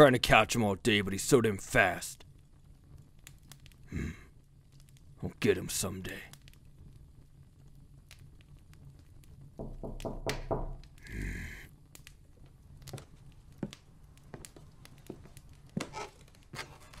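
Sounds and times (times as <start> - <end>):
knocking on wooden door: 9.6 - 10.8.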